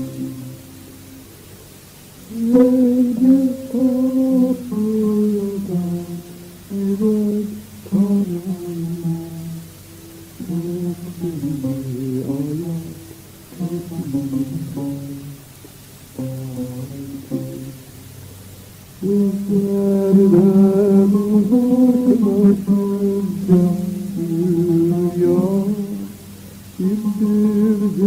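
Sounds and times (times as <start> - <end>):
man singing slow song: 0.0 - 0.9, 2.2 - 15.4, 16.2 - 17.8, 19.0 - 28.0
music with long held notes: 0.0 - 28.0.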